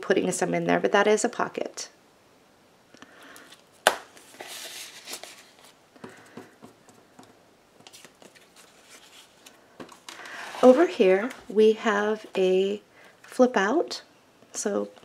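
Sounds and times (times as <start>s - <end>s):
paper pages rustling: 3.5s - 6.3s, 7.8s - 11.5s.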